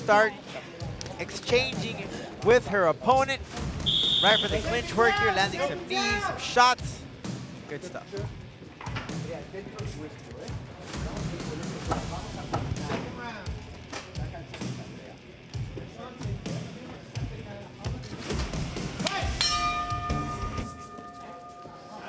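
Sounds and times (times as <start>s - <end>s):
music: 0.0s - 22.0s
steady held tone: 19.4s - 22.0s.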